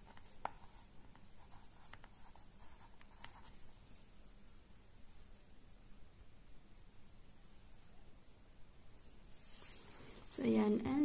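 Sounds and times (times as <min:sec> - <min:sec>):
pencil scratching on paper: 0:00.0 - 0:03.6.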